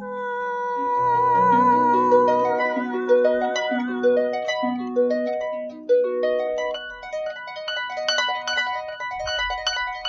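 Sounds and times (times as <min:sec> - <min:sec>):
harp plucked notes: 0:00.8 - 0:10.0.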